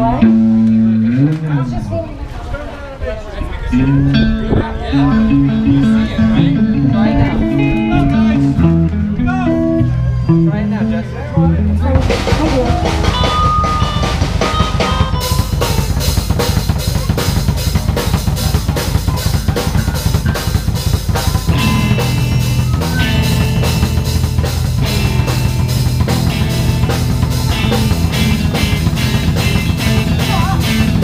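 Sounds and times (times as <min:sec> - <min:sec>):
electric guitars: 0:00.0 - 0:02.0, 0:03.6 - 0:31.0
bass guitar: 0:00.0 - 0:02.1, 0:03.5 - 0:31.0
drum kit: 0:11.9 - 0:31.0
cymbal beat: 0:12.0 - 0:31.0.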